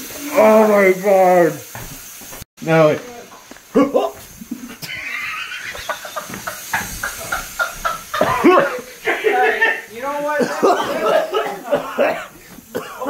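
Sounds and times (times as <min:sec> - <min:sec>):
young man laughing hard: 0:04.4 - 0:12.4.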